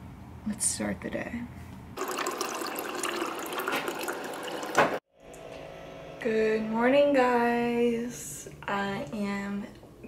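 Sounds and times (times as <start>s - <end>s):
water pouring into mug: 2.0s - 5.0s.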